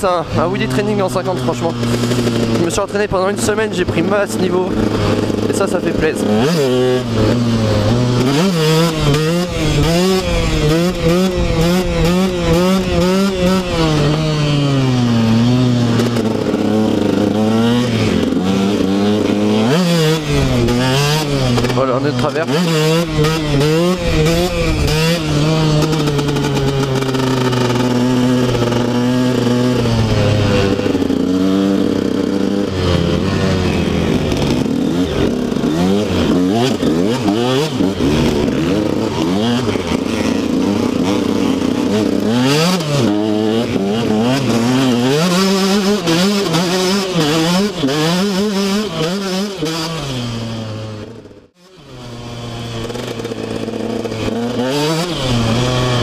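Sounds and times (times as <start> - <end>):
dirt bike engine revving: 0.0 - 56.0.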